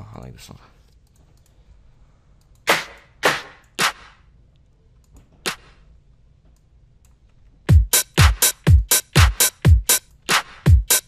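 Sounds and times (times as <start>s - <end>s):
electronic clap hits: 2.7s - 4.3s, 5.4s - 5.8s, 7.7s - 11.0s.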